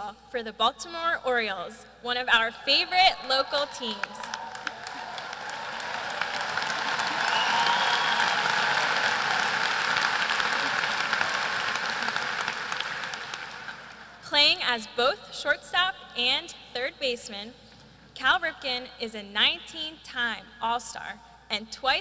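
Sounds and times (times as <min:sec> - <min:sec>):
crowd applauding and cheering: 0:03.2 - 0:14.2.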